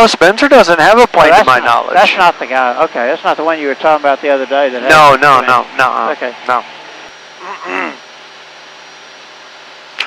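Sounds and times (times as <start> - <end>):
light aircraft engine drone: 0.0 - 10.0.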